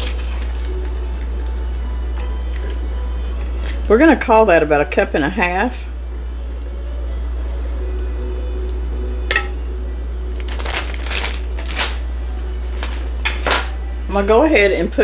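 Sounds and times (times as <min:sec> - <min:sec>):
faint background music: 0:00.0 - 0:15.0
low steady hum: 0:00.0 - 0:15.0.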